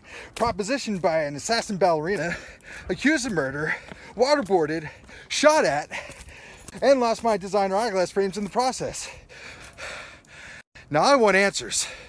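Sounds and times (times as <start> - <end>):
man breathing hard: 0.0 - 0.4, 2.3 - 2.9, 3.7 - 4.2, 4.9 - 5.3, 5.9 - 6.7, 9.0 - 10.9, 11.8 - 12.0.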